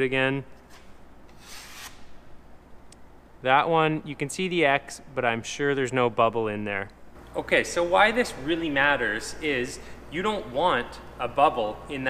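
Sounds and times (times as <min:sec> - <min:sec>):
drywall knife scraping: 0:00.6 - 0:02.1.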